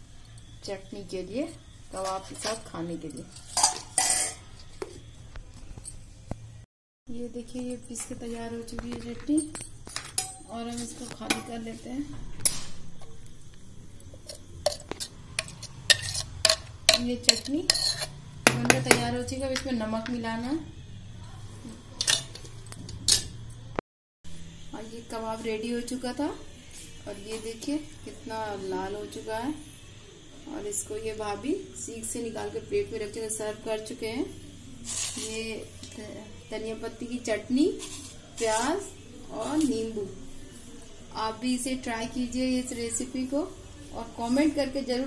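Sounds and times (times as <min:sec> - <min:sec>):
steel bowls clattering: 0:02.0 - 0:04.8, 0:14.1 - 0:19.7.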